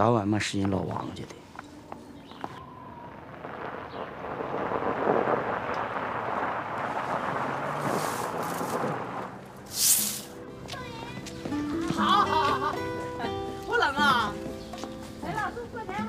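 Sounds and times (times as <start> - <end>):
car engine and tyres rumbling: 5.5 - 9.8.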